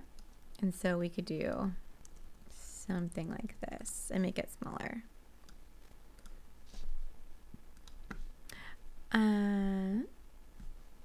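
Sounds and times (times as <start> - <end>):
short breathy noise: 8.5 - 8.8.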